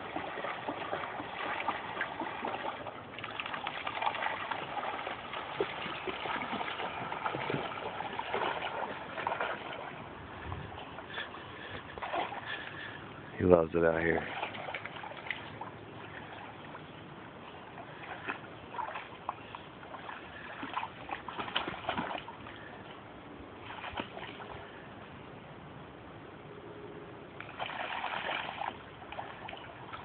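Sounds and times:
dog splashing in water: 0.0 - 10.0, 11.8 - 12.7, 14.1 - 16.6, 17.8 - 22.5, 23.6 - 24.5, 27.4 - 30.0.

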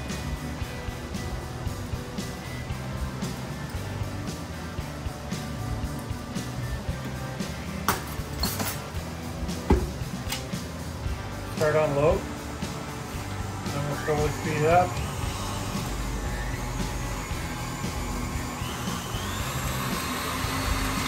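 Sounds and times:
stand mixer motor whirring: 12.5 - 21.0.

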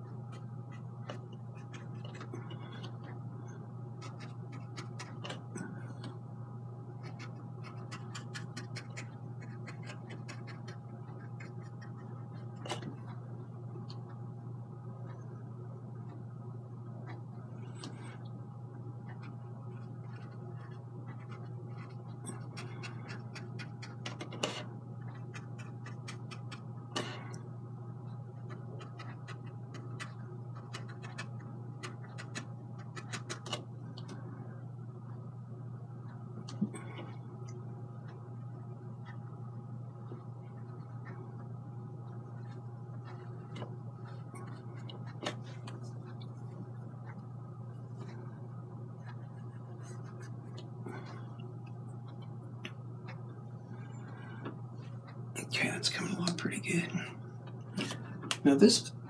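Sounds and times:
low room hum: 0.0 - 59.0.

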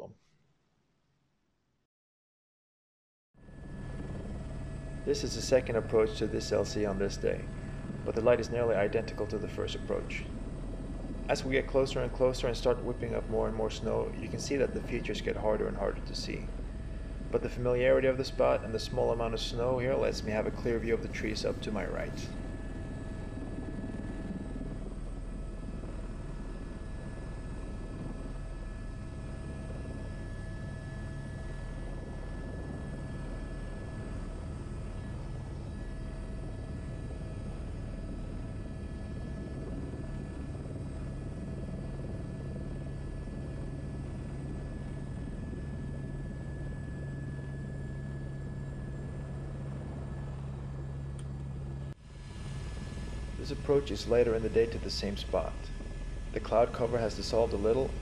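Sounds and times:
helicopter rotor and turbine drone: 3.4 - 58.0
thin constant whine: 3.4 - 58.0.

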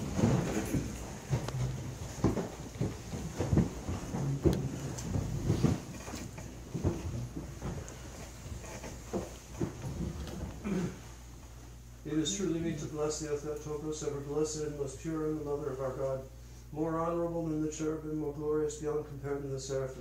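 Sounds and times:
knocks and thumps: 0.0 - 10.8
chairs shifting: 0.0 - 11.6
low room hum: 0.0 - 20.0.

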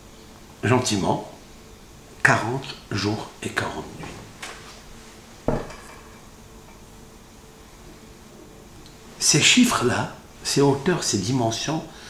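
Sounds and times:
low steady background noise: 0.0 - 12.0.

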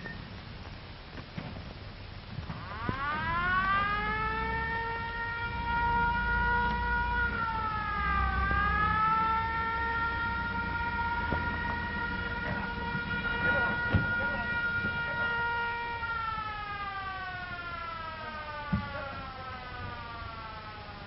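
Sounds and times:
mechanical siren wailing: 2.5 - 21.0.

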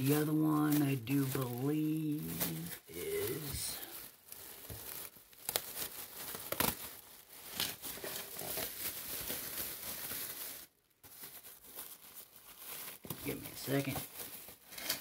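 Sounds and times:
plastic bag rustling: 0.0 - 15.0.

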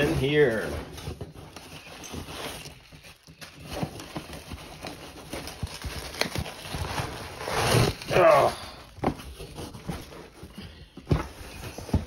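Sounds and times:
cardboard box being opened: 0.0 - 12.0
plastic rustling and scraping: 0.0 - 12.0.

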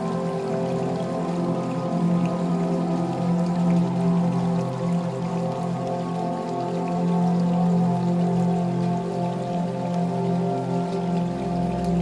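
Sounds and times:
calm new-age music: 0.0 - 12.0
faint rain patter: 0.0 - 12.0.

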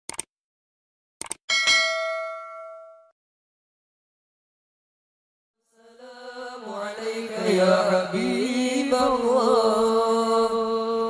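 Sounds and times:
notification bell ding: 1.5 - 3.2.

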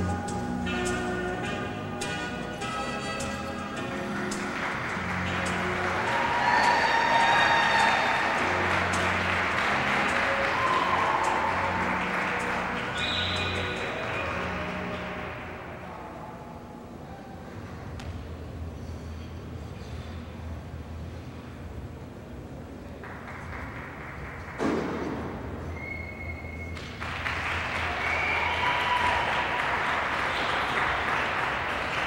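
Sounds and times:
ballroom dance music over speakers: 0.0 - 15.8
audience applause: 4.4 - 15.5, 26.8 - 32.0.

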